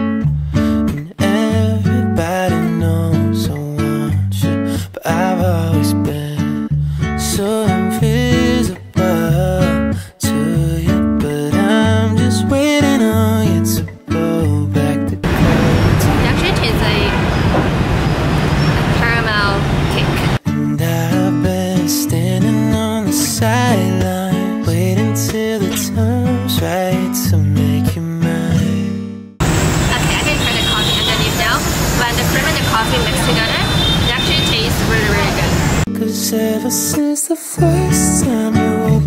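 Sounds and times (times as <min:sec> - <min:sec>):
city street traffic: 0:15.2 - 0:20.4, 0:29.4 - 0:35.9
woman talking: 0:16.0 - 0:17.2, 0:18.8 - 0:20.4, 0:29.9 - 0:35.6.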